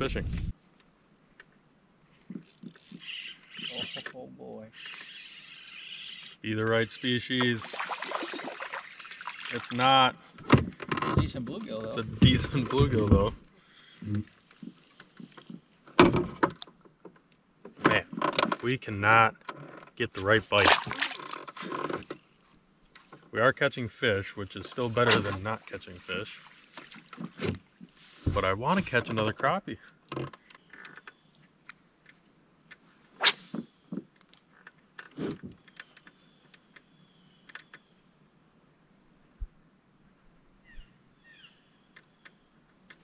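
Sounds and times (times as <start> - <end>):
fishing tackle clicks and knocks: 2.2 - 4.2.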